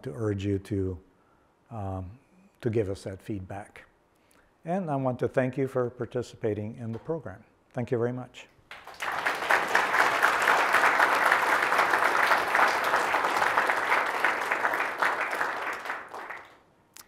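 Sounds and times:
audience applauding: 8.7s - 16.6s.

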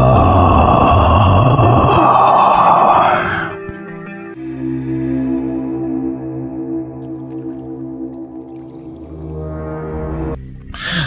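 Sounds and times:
harsh groaning wail: 0.0s - 3.6s
soft ambient music: 0.0s - 11.0s.

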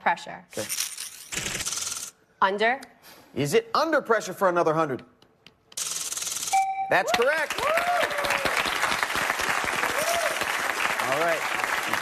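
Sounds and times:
electronic game-show chime: 6.6s - 7.1s
studio audience applause: 7.0s - 12.0s.

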